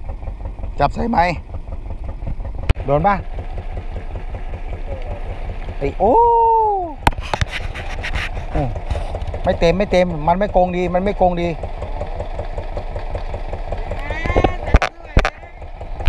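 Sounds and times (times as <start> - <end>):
boat engine idling: 0.0 - 16.0.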